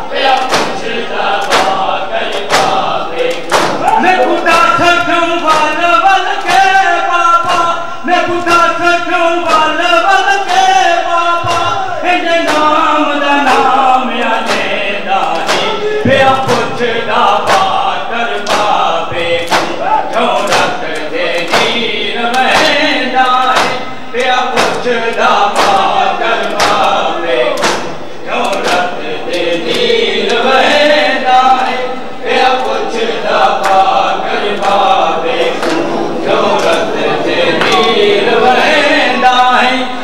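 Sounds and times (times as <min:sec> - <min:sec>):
men chanting a lament: 0:00.0 - 0:40.0
hands striking chests in unison: 0:00.3 - 0:05.8, 0:15.3 - 0:16.8, 0:18.4 - 0:18.8, 0:19.4 - 0:22.8, 0:23.5 - 0:23.9, 0:24.5 - 0:24.9, 0:25.5 - 0:28.9, 0:35.4 - 0:38.0.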